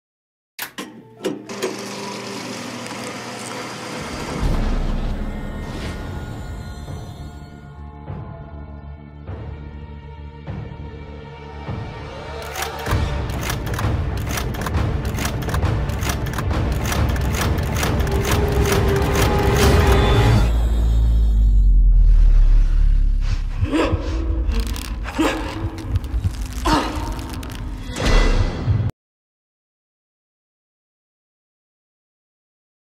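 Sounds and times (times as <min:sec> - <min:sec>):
camera shutter clicks: 0:12.4 - 0:19.7
deep low rumble: 0:20.5 - 0:27.9.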